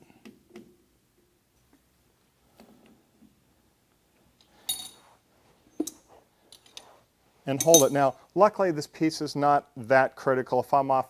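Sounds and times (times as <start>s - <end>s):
loud metal clink ringing: 7.6s - 8.1s.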